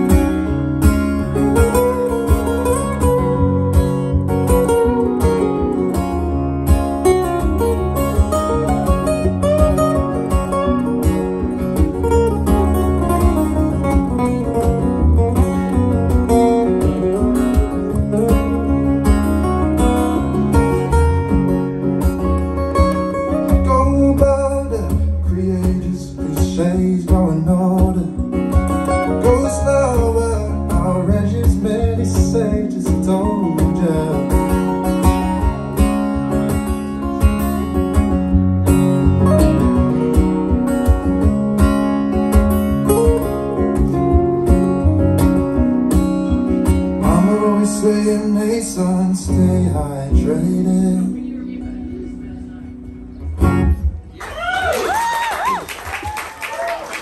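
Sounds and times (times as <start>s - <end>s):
acoustic guitars strumming: 0.0s - 54.2s
person singing: 29.0s - 34.7s.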